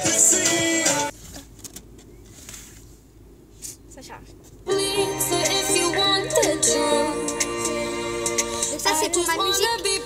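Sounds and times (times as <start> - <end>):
music from phone speaker: 0.0 - 1.1, 4.7 - 10.0.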